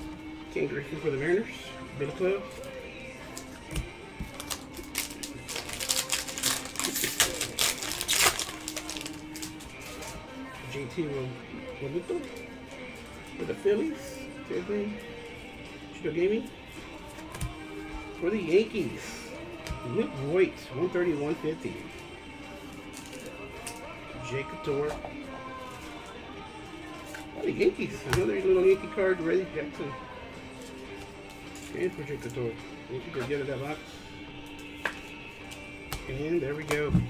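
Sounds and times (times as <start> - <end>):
background music: 0.0 - 37.0
card pack crinkling and clicking: 4.3 - 9.6.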